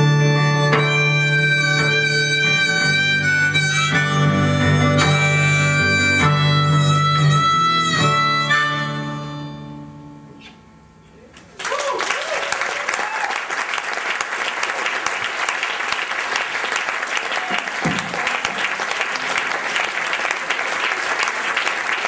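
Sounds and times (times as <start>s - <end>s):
audience applauding: 11.4s - 22.0s
cheers: 11.6s - 22.0s.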